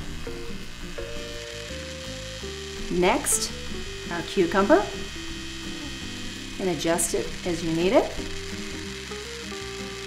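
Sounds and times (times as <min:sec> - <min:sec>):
juicer motor whirring: 0:00.0 - 0:10.0
light background music: 0:00.0 - 0:10.0.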